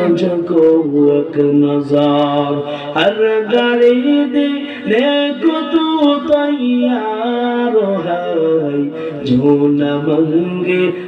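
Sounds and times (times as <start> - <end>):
man chanting melodically: 0.0 - 11.0.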